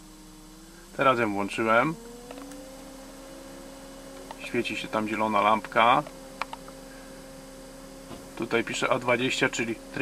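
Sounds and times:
air conditioner humming: 0:00.0 - 0:10.0.

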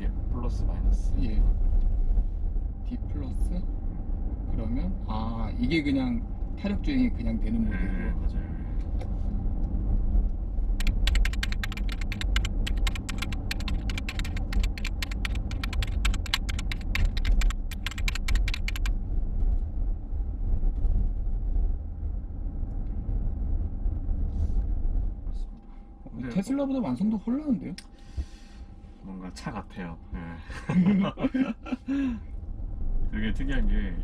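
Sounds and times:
road and tyre rumble in car: 0:00.0 - 0:34.0
rapid sharp clicks: 0:10.8 - 0:18.9.

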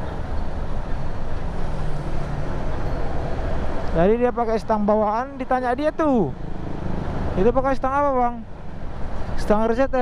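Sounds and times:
bus running alongside: 0:00.0 - 0:10.0
motorcycle road noise: 0:00.0 - 0:10.0.

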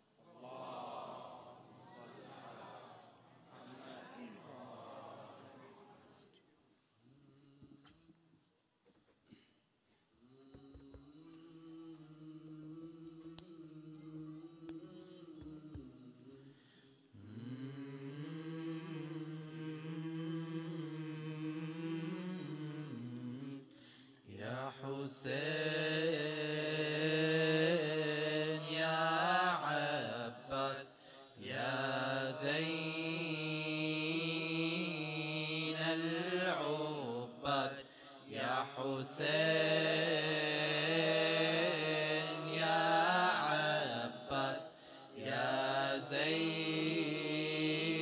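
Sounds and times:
men chanting devotional song: 0:00.3 - 0:06.2, 0:17.2 - 0:48.0.

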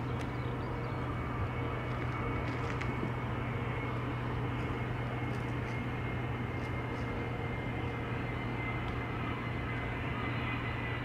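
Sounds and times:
high engine whine: 0:00.0 - 0:11.0
jet engine low hum: 0:00.0 - 0:11.0.

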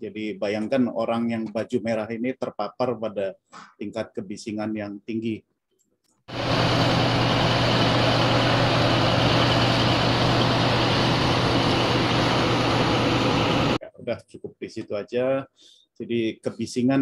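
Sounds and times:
drilling rig machinery din: 0:06.3 - 0:13.8
low even drone: 0:06.3 - 0:13.8.

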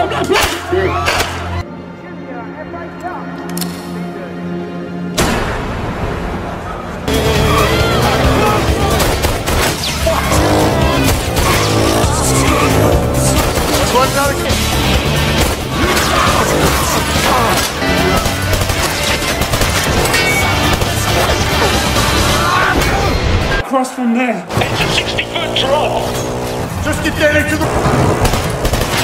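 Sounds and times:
motorcycle engines revving: 0:07.1 - 0:22.8, 0:24.5 - 0:29.0.

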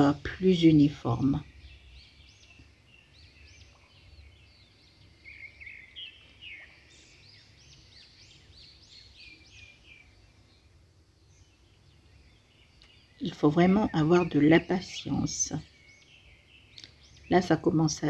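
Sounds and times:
faint bird chirping: 0:00.0 - 0:18.0.

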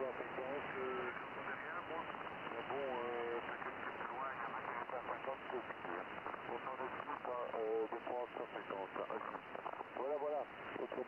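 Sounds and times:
radio band noise and hiss: 0:00.0 - 0:11.0
voice over radio loudspeaker: 0:00.0 - 0:11.0.

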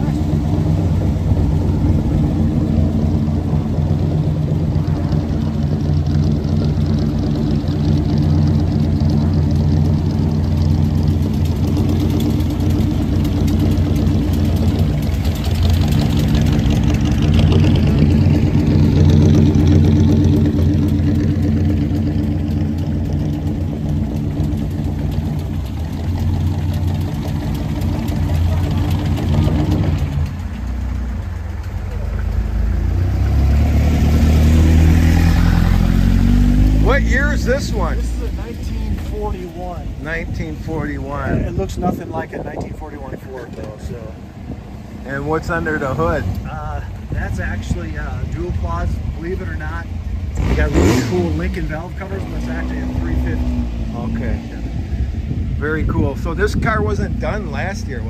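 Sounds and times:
car engine idling and revving: 0:00.0 - 0:58.0.

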